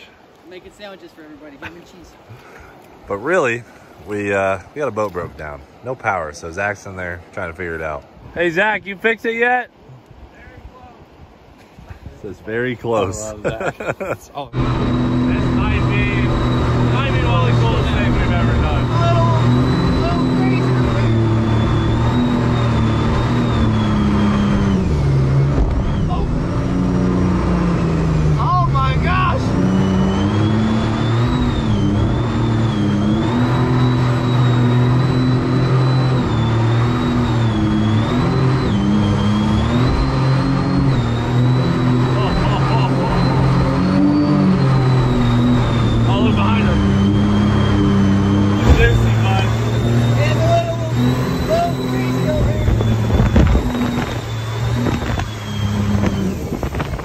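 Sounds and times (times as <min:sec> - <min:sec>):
rushing water: 0:00.0 - 0:57.0
jet boat engine running hard: 0:14.4 - 0:57.0
high whine: 0:14.5 - 0:57.0.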